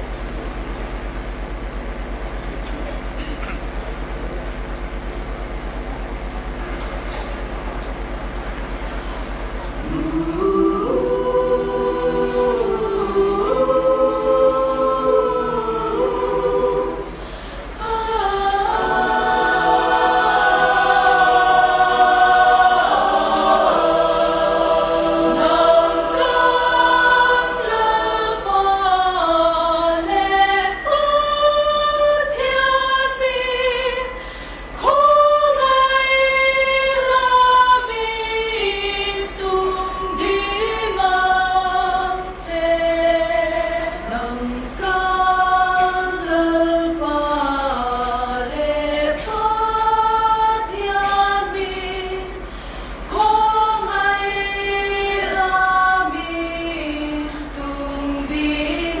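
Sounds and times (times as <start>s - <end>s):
mixed choir singing a cappella: 9.8s - 59.0s.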